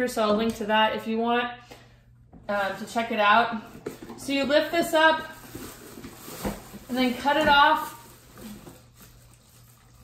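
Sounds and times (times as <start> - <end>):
plastic pail and bag handling: 3.6 - 10.0.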